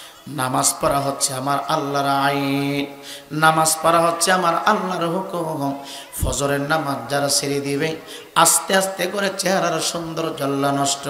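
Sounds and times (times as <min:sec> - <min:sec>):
man chanting a sermon: 0:00.2 - 0:11.0.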